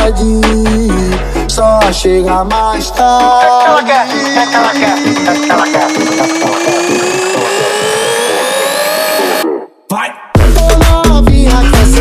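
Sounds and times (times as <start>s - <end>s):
quick repeated percussion hits: 3.0s - 8.9s
rising synth tone: 3.4s - 9.8s.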